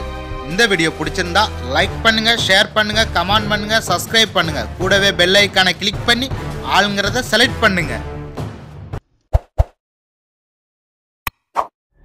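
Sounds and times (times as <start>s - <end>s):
background music: 0.0s - 9.0s.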